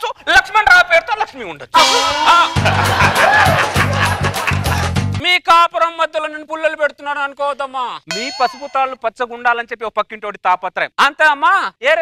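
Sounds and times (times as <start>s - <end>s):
quick talking: 0.0s - 5.0s
metallic ding and clang: 8.1s - 9.0s.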